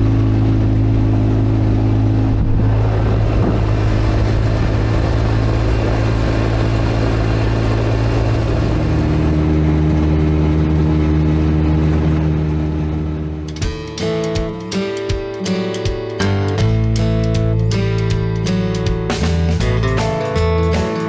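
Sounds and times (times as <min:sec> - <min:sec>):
utility vehicle engine running: 0:00.0 - 0:14.7.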